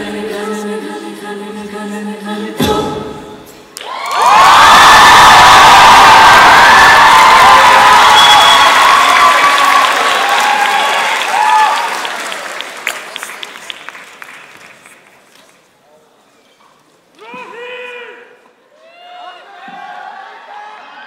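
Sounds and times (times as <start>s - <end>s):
shouts and whoops: 3.8s - 12.0s, 17.2s - 21.0s
audience applause and cheering: 3.8s - 15.2s.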